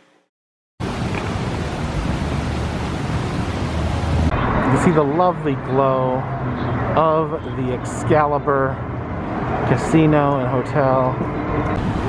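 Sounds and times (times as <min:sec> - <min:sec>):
street traffic hiss and rumble: 0:00.8 - 0:12.0
man's voice: 0:07.0 - 0:08.8, 0:09.7 - 0:11.2.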